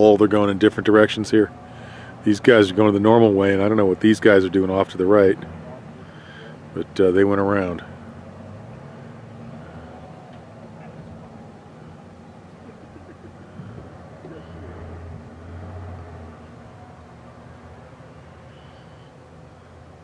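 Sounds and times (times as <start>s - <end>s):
distant jeep engines droning: 0.0s - 20.0s.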